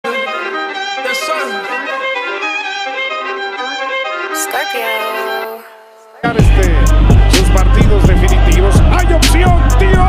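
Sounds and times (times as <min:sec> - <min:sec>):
bowed string melody: 0:00.1 - 0:09.6.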